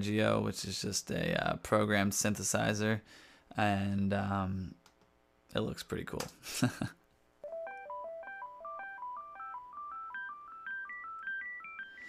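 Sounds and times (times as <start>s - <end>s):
synthesizer arpeggio: 7.4s - 12.0s.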